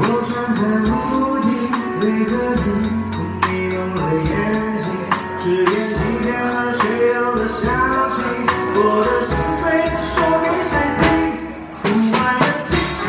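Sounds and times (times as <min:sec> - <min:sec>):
recorded song with singer: 0:00.0 - 0:13.0.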